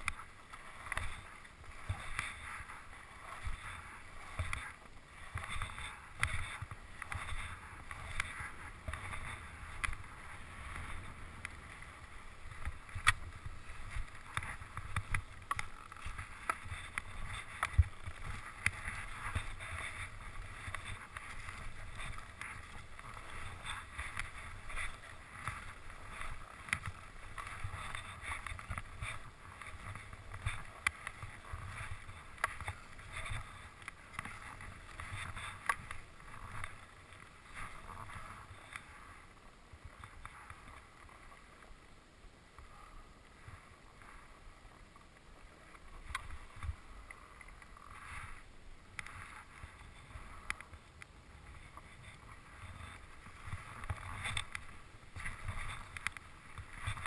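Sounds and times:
skis scraping over snow: 0.0 - 41.8, 42.6 - 57.0
wind rumbling on microphone: 0.0 - 57.0
skis hissing through snow: 0.2 - 15.0.

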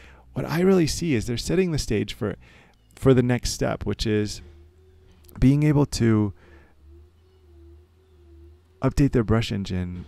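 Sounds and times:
low drone: 0.0 - 10.0
man talking: 0.3 - 2.4, 3.0 - 4.5, 5.3 - 6.4, 8.8 - 10.0
soft level tone: 0.3 - 9.8.

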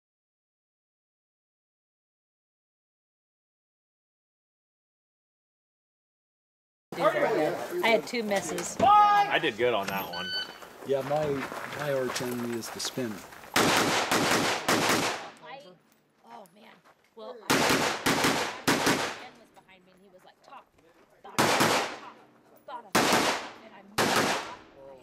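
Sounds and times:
rifle shots: 13.6 - 15.4, 17.5 - 19.4, 21.4 - 22.2, 22.9 - 24.7.

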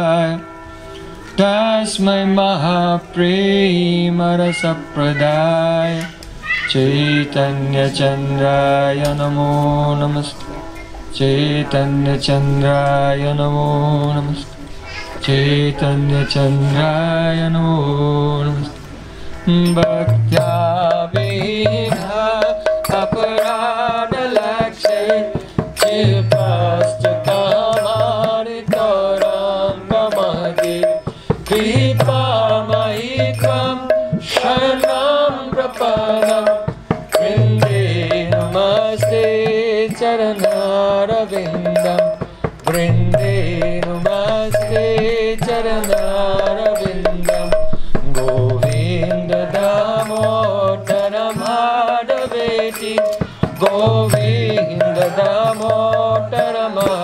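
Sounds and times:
man chanting: 1.4 - 18.8, 19.4 - 57.0
drum strokes: 7.8 - 57.0
low hum: 42.7 - 49.7
low sustained tones: 42.7 - 50.7.

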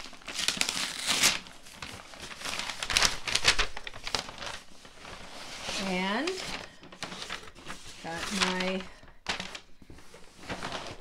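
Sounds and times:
tissue paper crinkling: 0.0 - 11.0.

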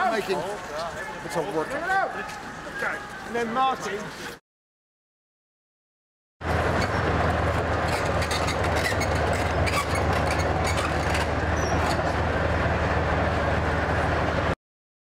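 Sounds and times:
steel tracks clanking on cobblestones: 6.4 - 14.6
tank engine running: 6.4 - 14.6.

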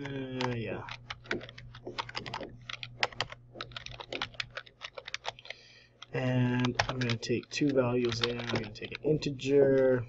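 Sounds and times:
computer keyboard typing: 0.0 - 10.0
low steady hum: 0.0 - 10.0.

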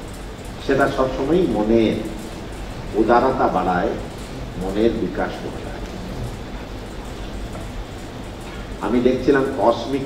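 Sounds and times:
low hum: 0.0 - 9.0
background hiss: 0.0 - 10.0.

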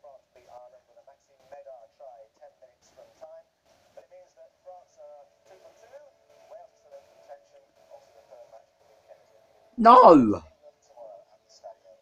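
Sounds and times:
faint tinny television speech: 0.0 - 12.0.

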